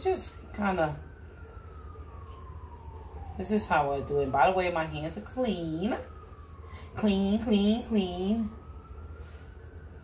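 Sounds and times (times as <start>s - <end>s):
faint siren wail: 0.0s - 10.0s
low steady hum: 0.0s - 10.0s.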